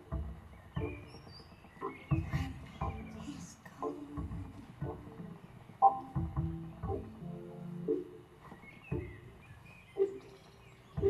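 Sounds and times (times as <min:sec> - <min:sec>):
plucked low notes: 0:04.0 - 0:08.3.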